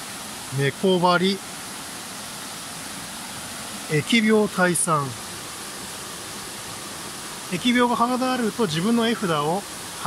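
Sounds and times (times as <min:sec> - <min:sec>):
stream rushing over rocks: 0:00.0 - 0:10.0.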